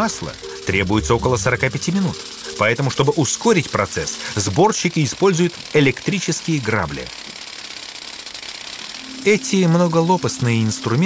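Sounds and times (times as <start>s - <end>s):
electric rake tines clattering: 0.0s - 11.0s.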